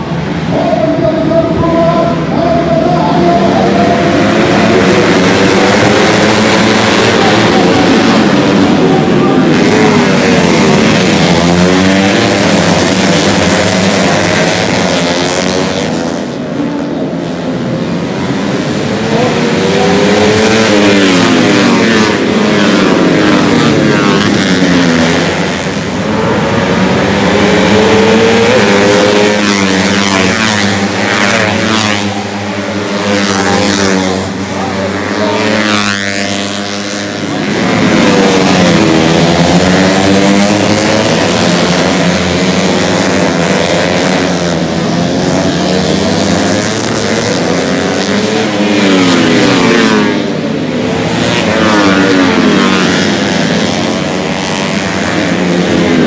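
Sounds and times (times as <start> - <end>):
motorcycles passing at high revs: 0.0 - 56.0.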